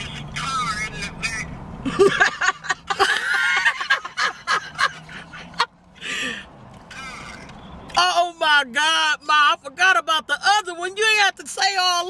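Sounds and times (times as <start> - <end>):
noisy drawn breath: 6.0 - 6.6.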